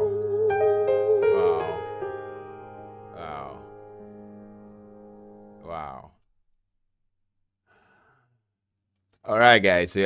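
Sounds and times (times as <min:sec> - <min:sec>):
faint exhaled breath: 0:07.7 - 0:08.4.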